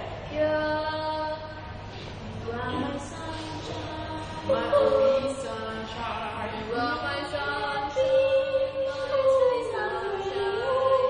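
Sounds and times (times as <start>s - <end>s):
young voices singing: 2.3s - 11.0s.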